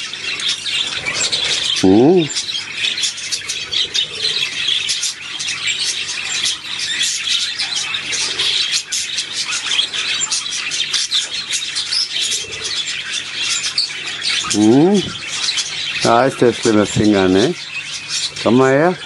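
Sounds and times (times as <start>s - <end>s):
budgerigars chattering: 0.0s - 19.0s.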